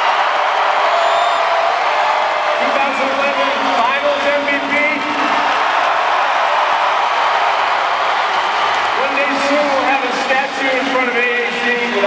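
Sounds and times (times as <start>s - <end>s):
whoops and shouts: 0.0s - 3.0s
crowd cheering: 0.0s - 12.0s.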